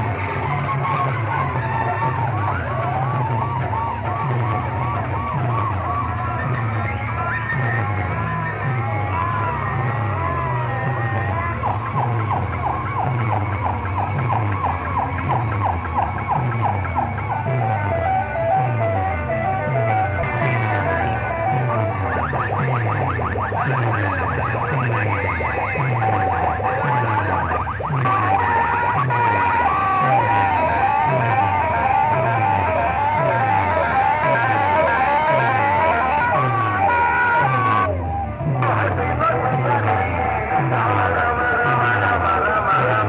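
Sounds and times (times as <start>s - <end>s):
dance music with heavy bass: 0.0s - 43.0s
siren-like electronic sweeps: 0.0s - 43.0s.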